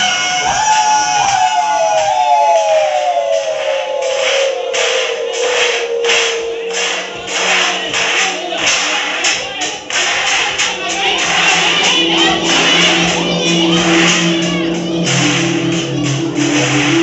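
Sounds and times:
quick sharp beat hits: 0:00.0 - 0:17.0.

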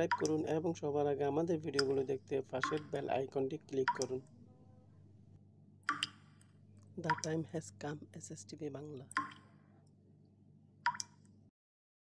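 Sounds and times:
faint low hum: 0:00.0 - 0:05.8, 0:06.7 - 0:10.3.

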